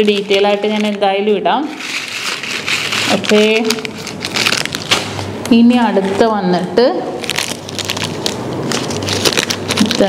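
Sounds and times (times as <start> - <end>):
paper wrapper crinkling: 0.0 - 5.9, 7.1 - 10.0.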